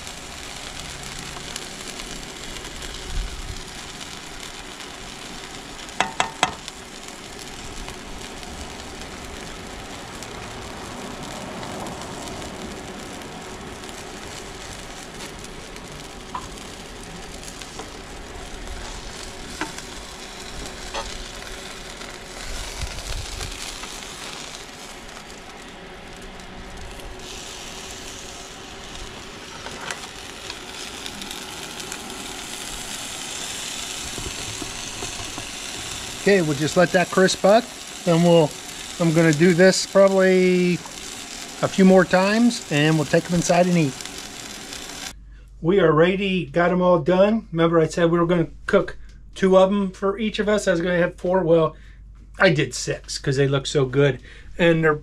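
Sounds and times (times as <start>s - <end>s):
food sizzling in oil: 0.0s - 45.2s.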